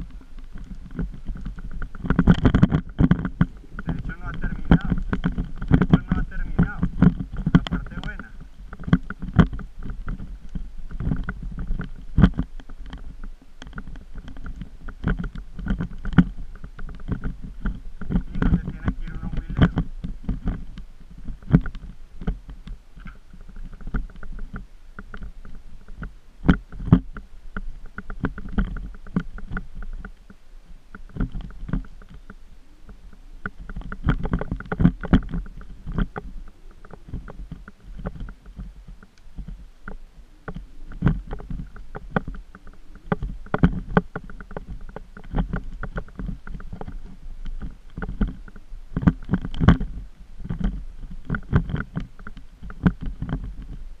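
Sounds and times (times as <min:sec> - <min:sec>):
constant low rumble: 0:00.0 - 0:54.0
knocks and rattles on bumpy trail: 0:00.0 - 0:54.0.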